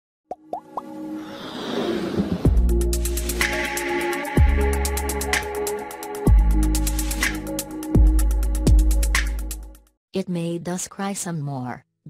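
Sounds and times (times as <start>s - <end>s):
logo intro music: 0.8s - 9.5s.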